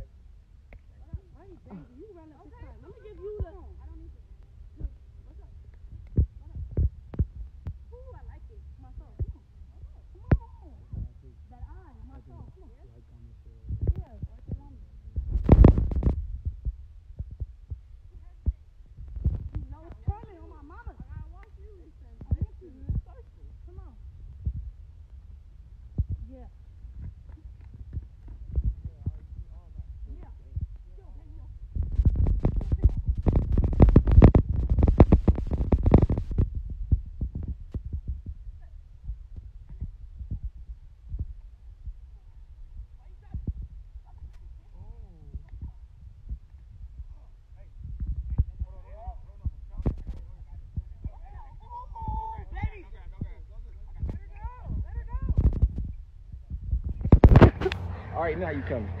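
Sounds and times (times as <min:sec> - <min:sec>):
hand rubbing phone microphone: 0:13.7 - 0:57.9
faint voices: 0:46.9 - 0:55.7.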